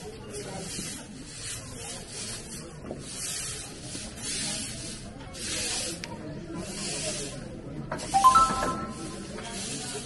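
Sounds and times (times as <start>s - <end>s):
broom sweeping pavement: 0.0s - 10.0s.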